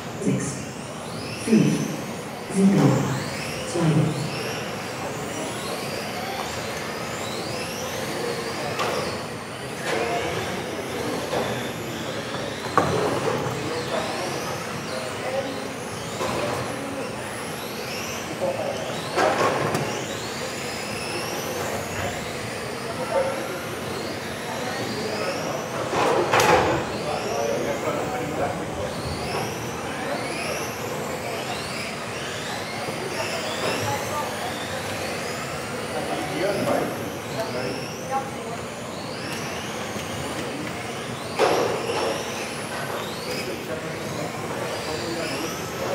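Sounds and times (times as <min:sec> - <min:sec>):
rc car motors whining: 0:00.0 - 0:45.9.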